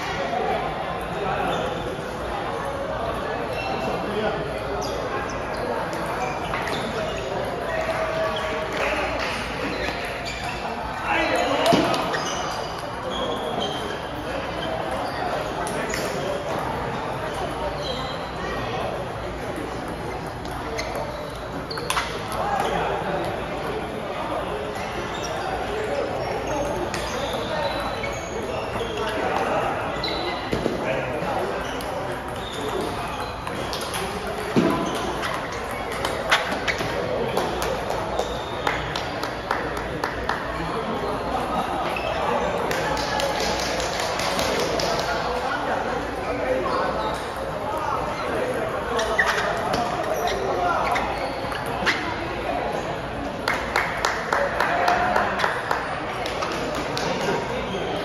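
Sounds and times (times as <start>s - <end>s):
voices in echoing hall: 0.0s - 58.0s.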